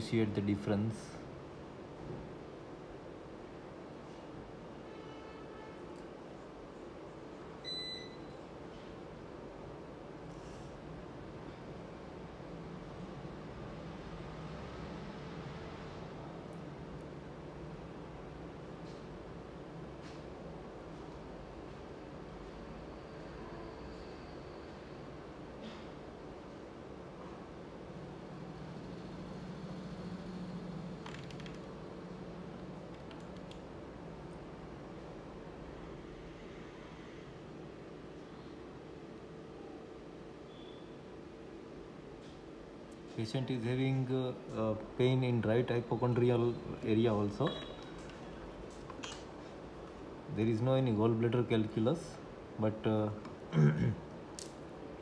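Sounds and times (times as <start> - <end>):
low hum of equipment: 0.0 - 55.0.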